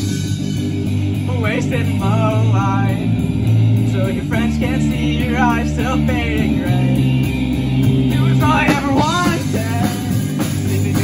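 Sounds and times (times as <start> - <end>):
distorted electric guitars: 0.0 - 11.0
drum kit: 0.0 - 11.0.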